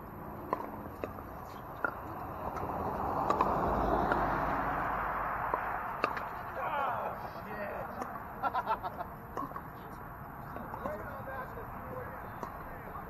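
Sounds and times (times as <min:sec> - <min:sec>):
voices: 0:01.4 - 0:13.0
rush of noise: 0:02.1 - 0:07.8
paddles hitting plastic balls: 0:05.5 - 0:07.2.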